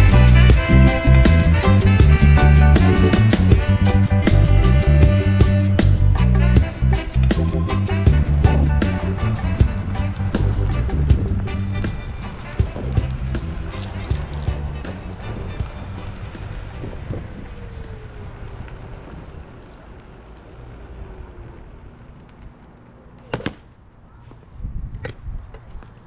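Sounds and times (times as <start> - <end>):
background music with beat: 0.0 - 18.3.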